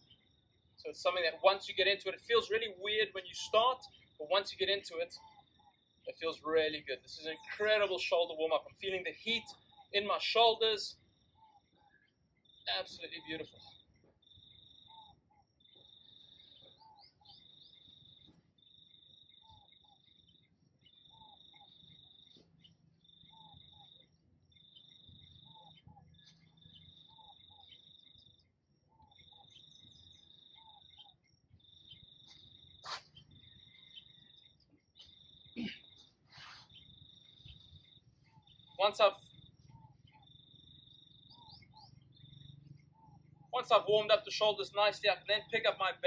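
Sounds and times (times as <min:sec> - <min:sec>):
cricket trilling: 0:00.0 - 0:46.0.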